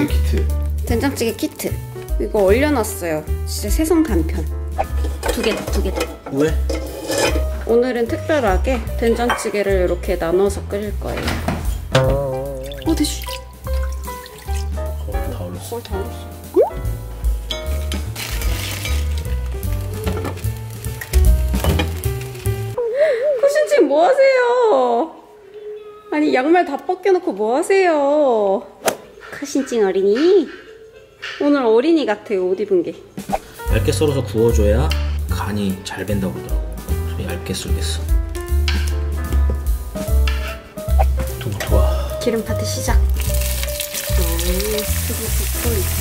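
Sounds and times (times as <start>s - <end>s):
cookware clinking: 4.8s - 7.6s, 9.2s - 10.0s
background music with bass: 10.0s - 22.8s, 33.3s - 46.0s
vegetables sizzling in pans: 17.7s - 22.8s, 42.8s - 46.0s.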